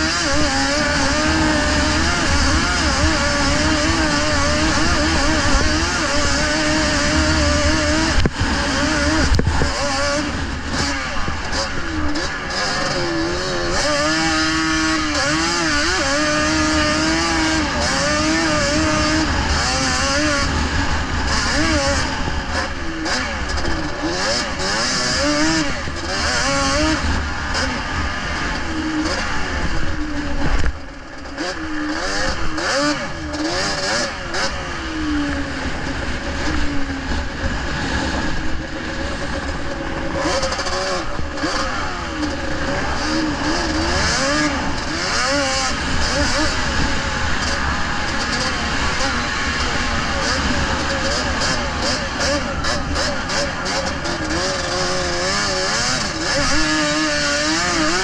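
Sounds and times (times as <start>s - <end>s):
quad engine revving hard: 0.0s - 58.0s.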